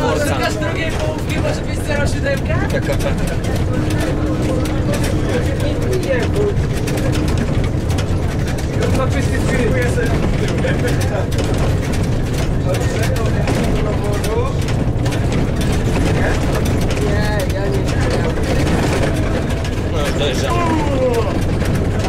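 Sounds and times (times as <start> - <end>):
bus diesel engine and road noise: 0.0 - 22.0
passengers talking quietly: 0.0 - 22.0.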